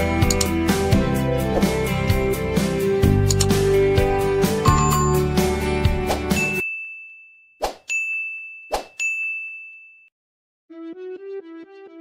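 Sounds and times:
background music: 0.0s - 6.6s, 10.7s - 12.0s
light keyboard melody: 0.0s - 6.7s
sharp clicks: 0.2s - 0.6s, 3.2s - 3.6s
high bell-like ding: 4.6s - 5.3s, 6.4s - 10.1s.

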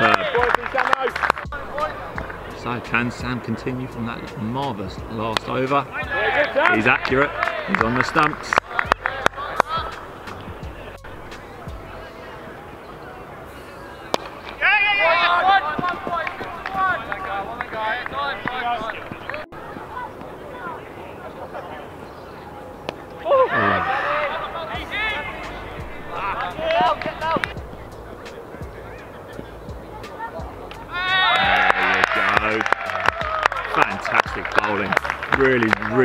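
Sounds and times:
sharp claps: 0.0s - 3.1s, 6.4s - 10.6s, 15.6s - 19.5s, 25.4s - 28.4s, 29.4s - 36.0s
people shouting: 5.9s - 21.2s, 23.2s - 34.9s.

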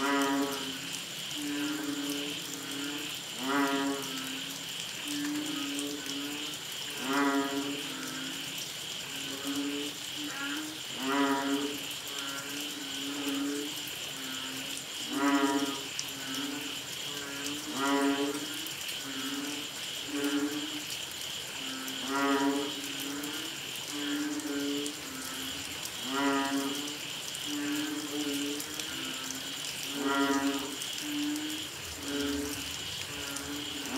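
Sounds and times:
frogs mooing calls: 0.0s - 33.9s.

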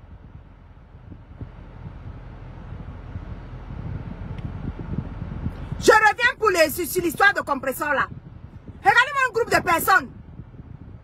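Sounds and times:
low rumble inside car cabin: 0.0s - 11.0s.

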